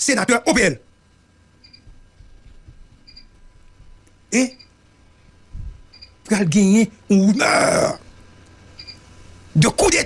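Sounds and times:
faint high chirp: 0:01.6 - 0:01.8, 0:05.9 - 0:06.2, 0:08.8 - 0:09.0.

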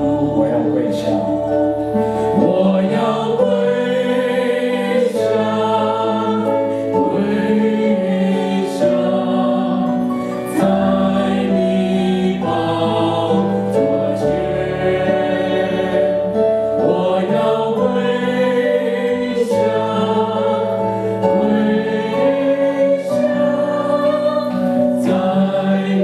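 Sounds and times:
congregation singing: 0:00.0 - 0:26.0
electric keyboard chords: 0:00.0 - 0:26.0.

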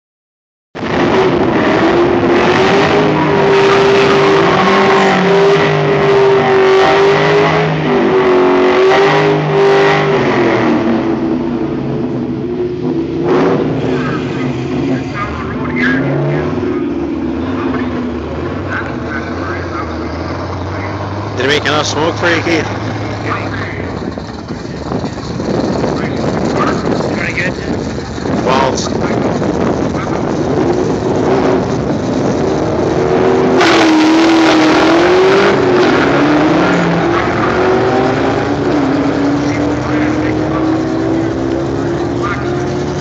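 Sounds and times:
car engine revving high: 0:00.8 - 0:43.0.

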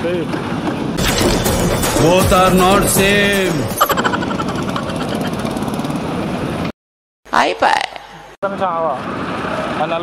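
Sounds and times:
street traffic: 0:03.2 - 0:06.7, 0:07.3 - 0:10.0.

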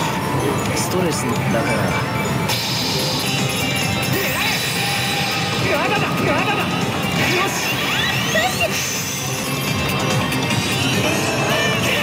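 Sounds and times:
loud din of a gaming parlor: 0:00.0 - 0:12.0
slot machine music and sound effects: 0:00.0 - 0:12.0.

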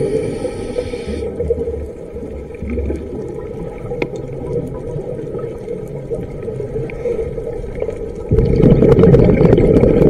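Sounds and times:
regulator air hiss: 0:00.0 - 0:01.3
muffled underwater bubbling: 0:00.0 - 0:10.0.

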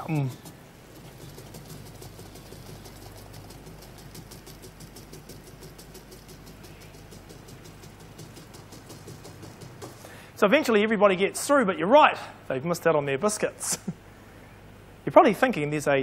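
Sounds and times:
rice grains pattering in funnel: 0:00.0 - 0:10.4
steady low hum: 0:00.0 - 0:16.0.

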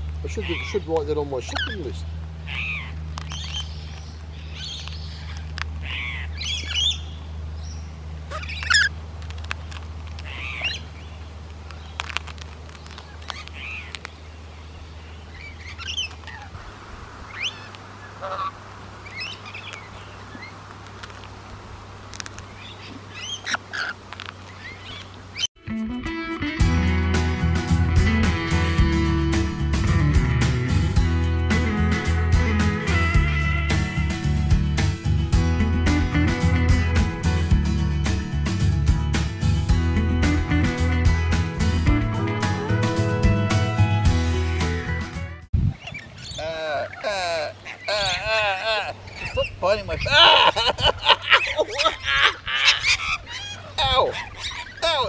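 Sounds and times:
lorikeets chirping: 0:00.2 - 0:08.9, 0:09.7 - 0:25.5, 0:45.7 - 0:55.0
guitar-led country music: 0:25.6 - 0:45.5.

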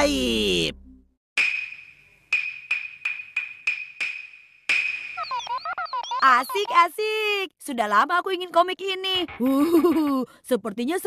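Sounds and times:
wooden clappers clacking: 0:01.4 - 0:05.5.

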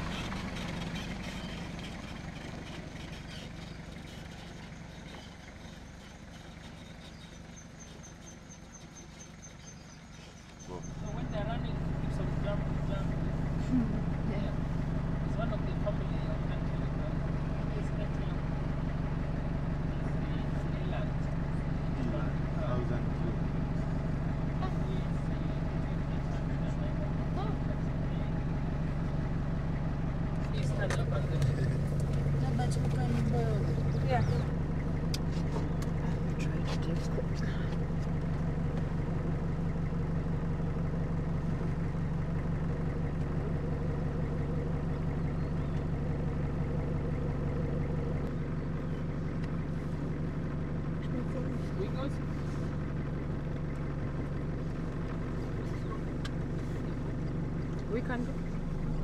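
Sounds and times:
vehicle engine running: 0:00.0 - 0:59.0.

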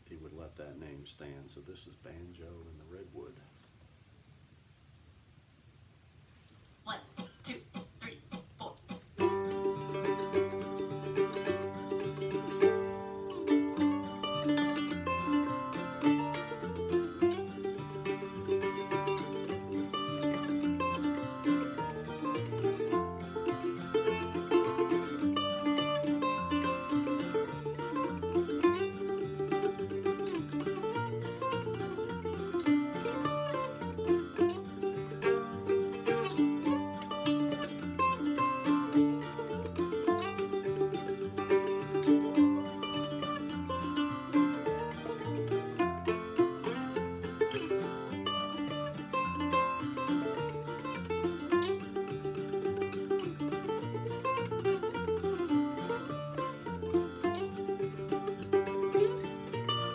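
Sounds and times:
mandolin picking a bluegrass tune: 0:00.0 - 0:03.4, 0:06.9 - 0:59.9.

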